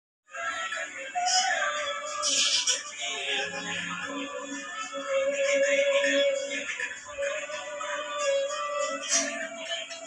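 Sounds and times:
pop song through television speaker: 0:00.3 - 0:10.0.

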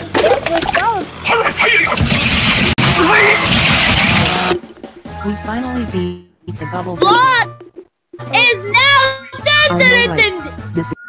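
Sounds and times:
loud noisy burst: 0:01.6 - 0:04.6
cartoon music with voice: 0:05.0 - 0:07.6, 0:08.2 - 0:11.0.

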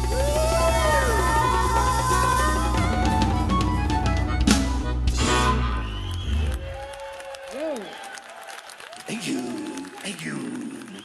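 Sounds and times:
person whooping: 0:00.0 - 0:03.1, 0:06.2 - 0:08.2
audience applauding: 0:05.7 - 0:11.0.

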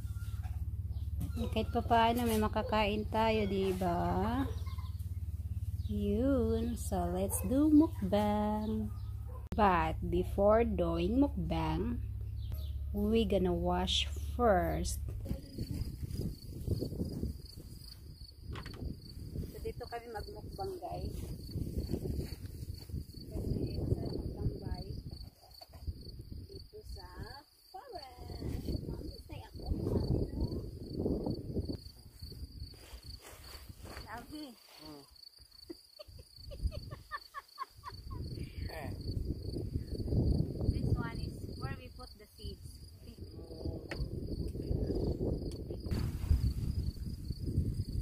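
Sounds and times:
wind rumbling on microphone: 0:00.0 - 0:27.4, 0:28.2 - 0:34.2, 0:36.4 - 0:37.2, 0:37.8 - 0:48.0
crickets chirping: 0:10.3 - 0:48.0.

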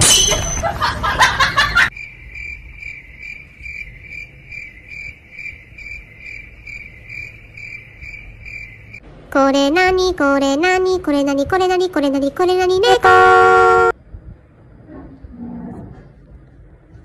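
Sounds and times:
cricket chirping: 0:01.5 - 0:09.0.

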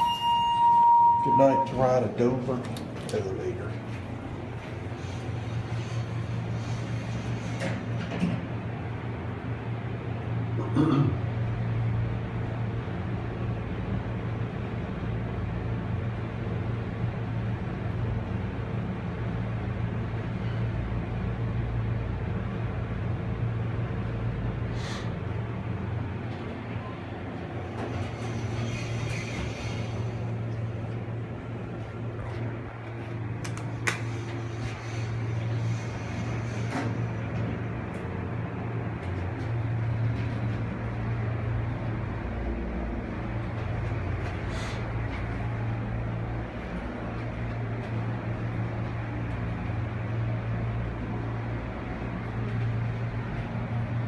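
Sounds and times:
elevator doors sliding open: 0:00.0 - 0:09.2, 0:26.1 - 0:42.3
elevator hum: 0:00.0 - 0:54.0.

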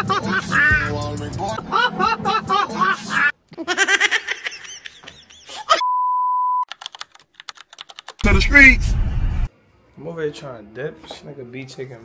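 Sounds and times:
quick run of clicks: 0:06.7 - 0:08.3.

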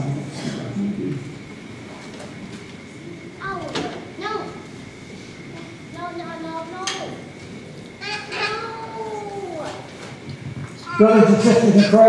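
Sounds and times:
baby calling high-pitched: 0:08.0 - 0:09.5, 0:10.8 - 0:12.0.

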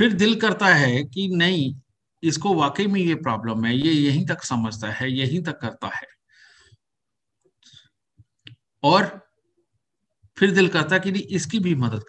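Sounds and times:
man speaking: 0:00.0 - 0:06.2, 0:08.8 - 0:09.3, 0:10.4 - 0:12.0
soft breath: 0:06.3 - 0:06.9.

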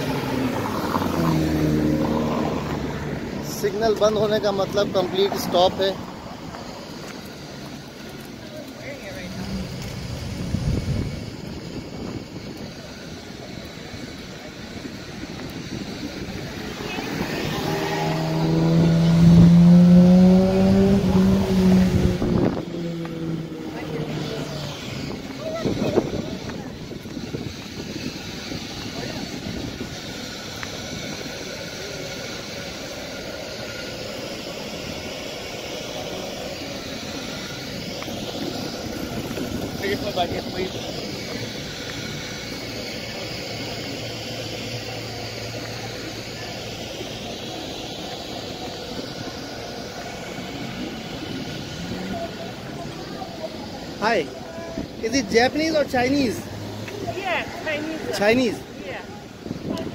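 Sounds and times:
vehicle passing close by: 0:00.0 - 0:08.2, 0:15.6 - 0:27.9
street traffic: 0:00.0 - 0:59.9.

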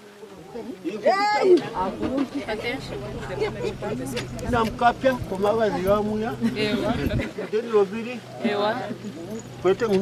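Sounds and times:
people talking at once: 0:00.0 - 0:10.0.

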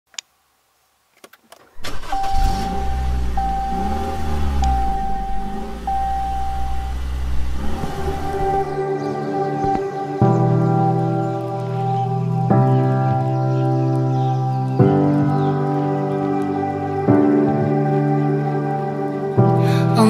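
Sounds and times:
dashboard warning chime: 0:01.8 - 0:08.8
truck engine rumbling: 0:01.8 - 0:08.8
music: 0:01.8 - 0:20.0.

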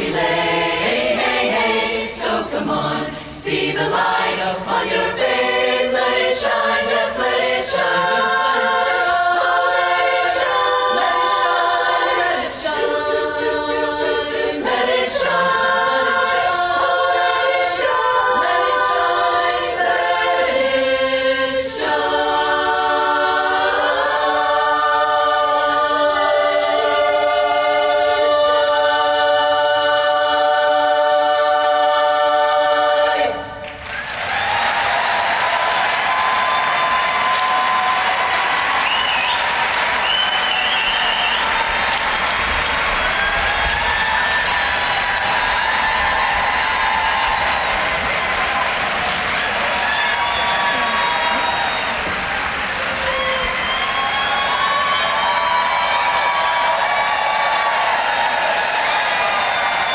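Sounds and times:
women's chorus singing in harmony: 0:00.0 - 0:59.9
audience applause: 0:33.6 - 0:59.9.

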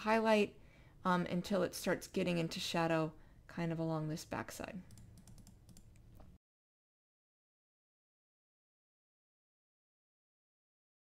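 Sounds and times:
computer key clicks: 0:04.9 - 0:06.3.

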